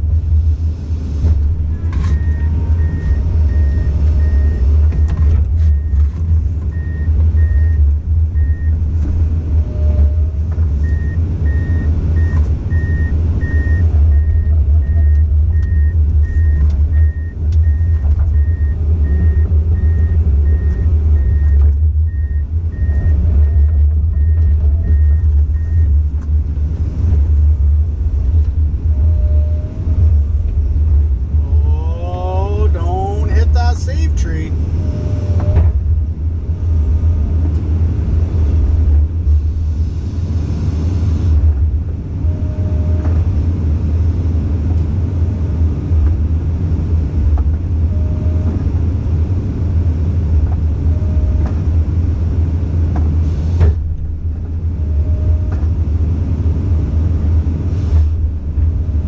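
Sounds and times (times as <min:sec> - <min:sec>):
excavator diesel engine rumbling: 0:00.0 - 0:59.0.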